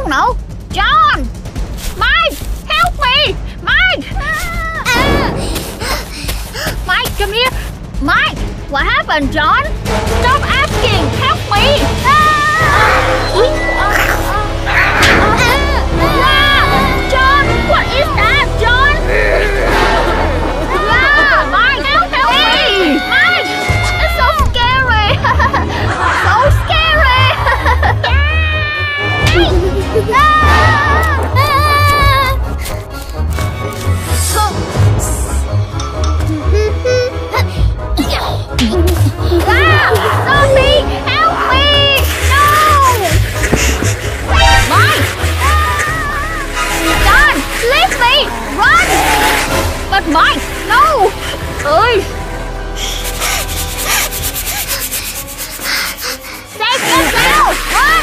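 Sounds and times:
rubbing or scraping strokes: 41.9s - 51.8s, 52.8s - 58.0s.

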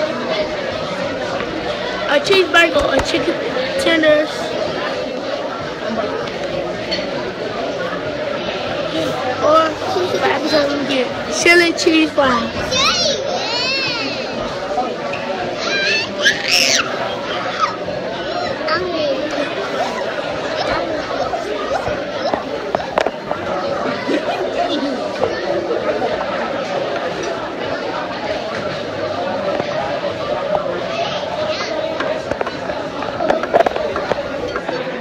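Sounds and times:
restaurant chatter: 0.0s - 35.0s.

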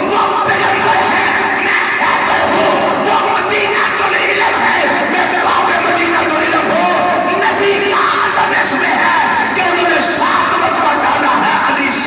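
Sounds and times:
man chanting through a microphone: 0.0s - 12.0s.

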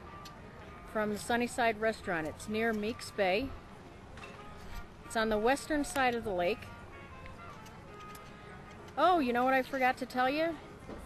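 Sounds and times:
faint music: 0.0s - 11.0s
outdoor background noise: 0.0s - 11.0s.

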